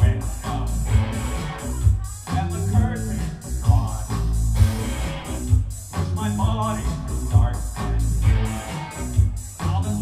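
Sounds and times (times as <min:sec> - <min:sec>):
live band playing loudly: 0:00.0 - 0:10.0.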